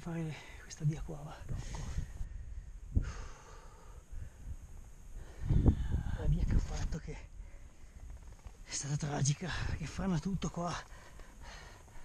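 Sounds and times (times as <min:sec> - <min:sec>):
man breathing hard: 0:01.5 - 0:04.5, 0:10.9 - 0:12.0.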